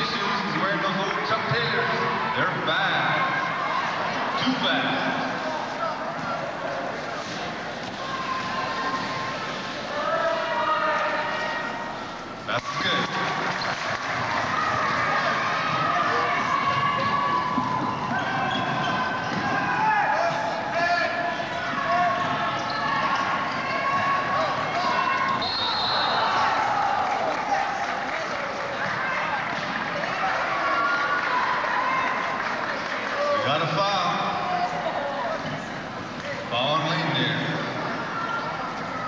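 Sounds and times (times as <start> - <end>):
players and spectators chattering: 0.0 - 39.0
referee's whistle: 25.2 - 26.4.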